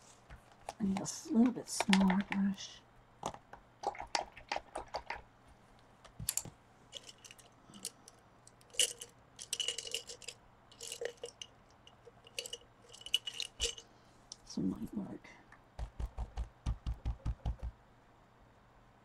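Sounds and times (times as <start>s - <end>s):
paintbrushes clicking and rattling: 0.3s - 2.6s, 3.2s - 5.2s, 6.2s - 13.8s.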